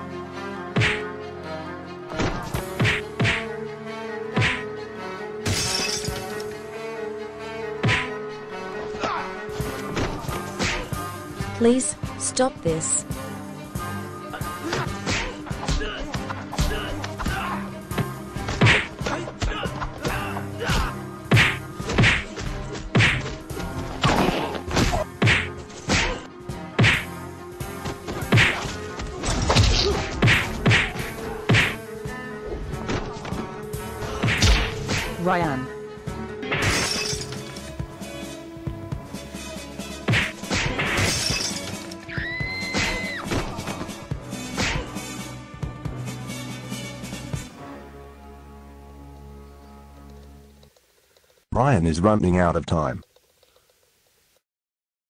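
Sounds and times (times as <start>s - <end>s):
punch and kick whacks: 0.7s - 1.0s, 2.2s - 3.5s, 4.4s - 4.6s, 7.8s - 8.1s, 10.6s - 10.9s, 14.7s - 16.9s, 18.4s - 23.4s, 24.0s - 26.2s, 26.8s - 27.1s, 28.1s - 31.8s, 34.1s - 35.2s, 40.0s - 41.2s, 44.5s - 45.0s.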